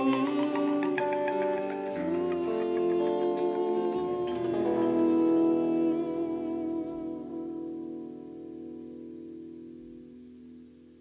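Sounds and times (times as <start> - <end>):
electric guitars playing rock: 0.0 - 11.0.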